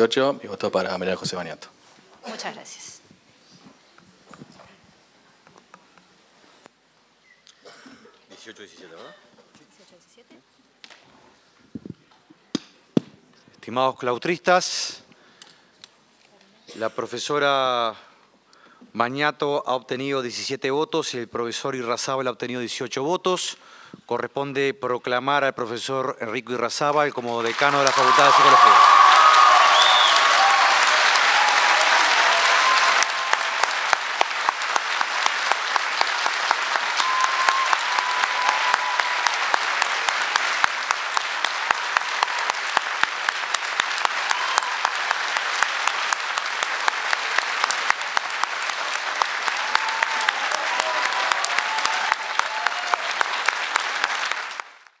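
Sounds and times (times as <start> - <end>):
audience applauding: 27.3 - 55.0
rhythmic clapping: 30.1 - 55.0.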